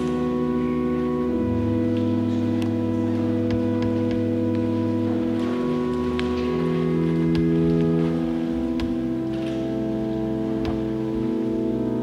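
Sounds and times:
organ playing slow chords: 0.0 - 12.0.

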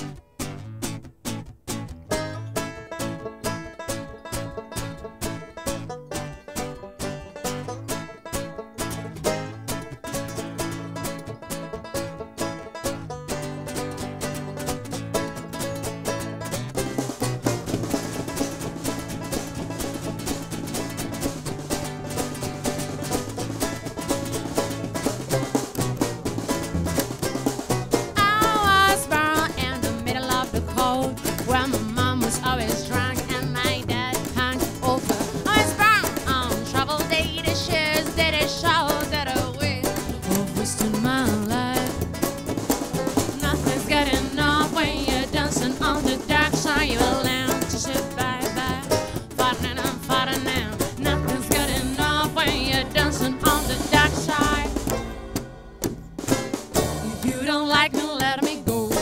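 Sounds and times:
acoustic guitar picking: 0.0 - 59.0
banjo picking: 0.0 - 59.0
plucked double bass: 0.0 - 59.0
drum kit: 3.9 - 59.0.

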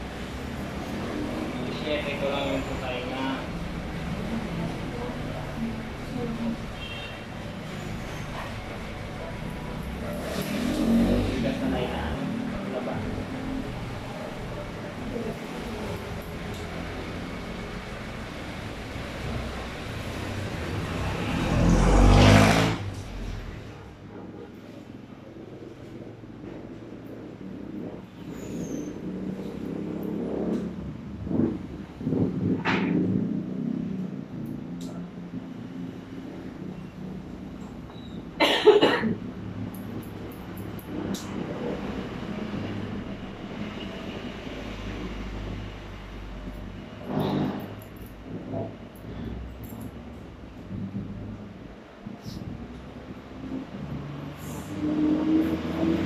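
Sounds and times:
vehicle engine passing by: 0.0 - 6.7, 7.3 - 38.4, 52.2 - 56.0
air conditioner humming: 0.0 - 43.7
steady background noise: 0.0 - 56.0
person coughing: 38.4 - 39.2.

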